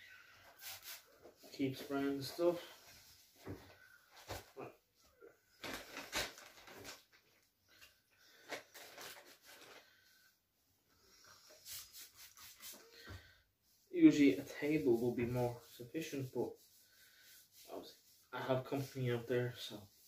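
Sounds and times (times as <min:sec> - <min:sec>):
packaging rustling: 0:05.6 - 0:07.4, 0:08.4 - 0:09.9
short hissy bursts: 0:11.3 - 0:12.9.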